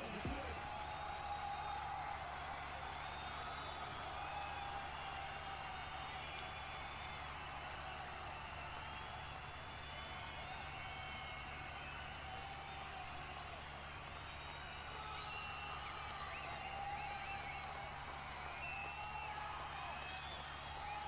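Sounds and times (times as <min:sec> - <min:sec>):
distant crowd voices: 0:00.0 - 0:01.1.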